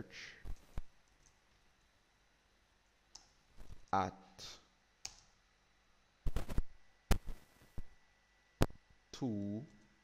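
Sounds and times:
man speaking: 0.0s - 0.4s, 3.9s - 4.7s, 9.2s - 9.7s.

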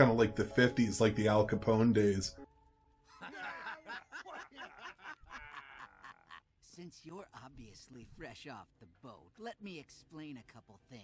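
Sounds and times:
men laughing: 3.0s - 6.6s.

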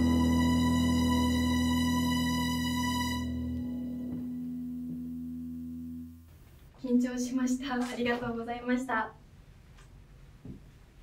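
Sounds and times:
held keyboard chord: 0.0s - 6.3s.

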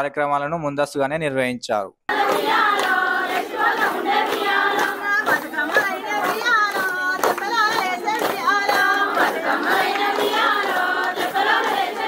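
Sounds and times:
women and girls singing in chorus: 2.1s - 12.0s.

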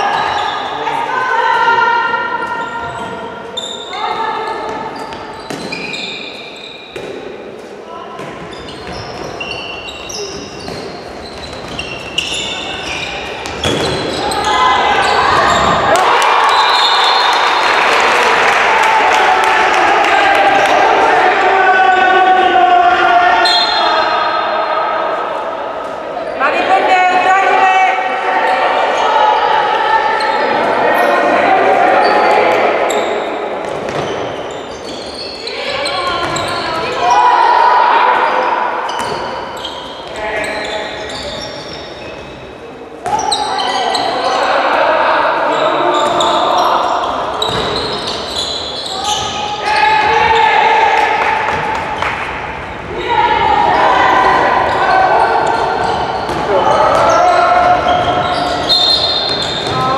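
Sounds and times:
people shouting in a hall: 0.0s - 7.0s, 11.6s - 59.9s.

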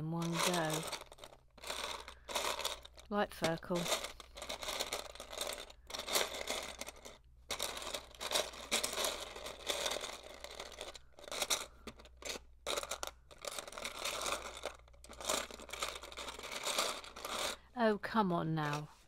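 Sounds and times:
plastic bricks rustling and clattering: 0.0s - 17.7s, 18.6s - 19.0s.

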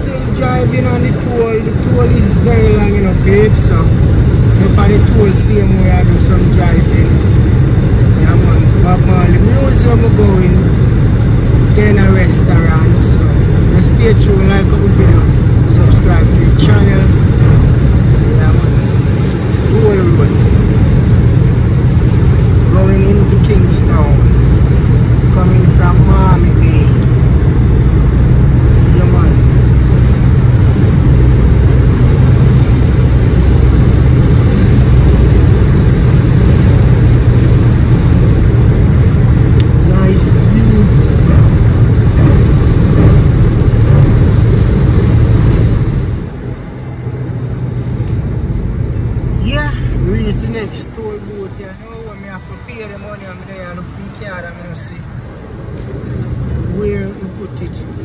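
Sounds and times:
car road noise drone: 0.0s - 58.0s.

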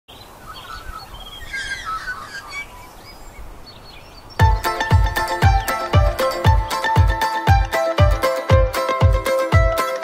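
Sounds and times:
birds chirping and calling: 0.1s - 7.3s.

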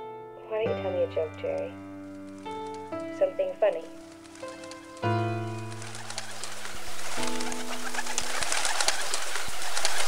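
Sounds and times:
flock of birds chattering: 2.4s - 10.0s.

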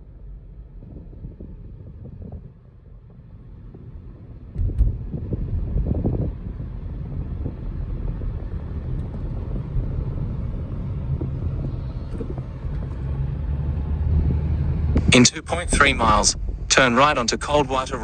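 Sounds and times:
car engine and road noise: 0.0s - 18.0s.

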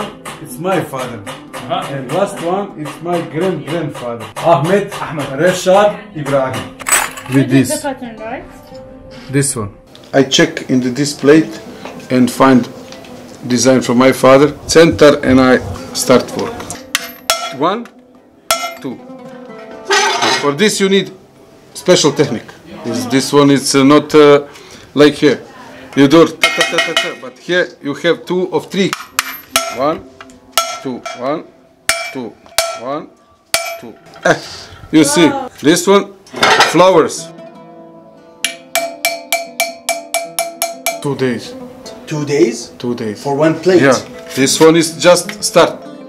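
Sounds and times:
hammer tapping chisel on metal: 0.0s - 5.6s, 26.4s - 27.2s, 28.9s - 31.3s, 31.9s - 32.9s, 33.6s - 33.9s, 38.4s - 41.1s
hammer striking metal punch: 16.8s - 17.6s, 18.5s - 18.9s, 28.9s - 30.0s, 30.6s - 31.3s, 31.9s - 32.9s, 33.5s - 33.9s, 38.4s - 41.1s.

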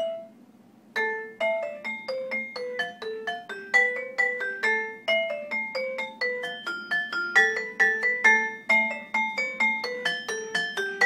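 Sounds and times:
metal-bar mallet instrument notes: 0.0s - 0.3s, 1.0s - 11.0s.

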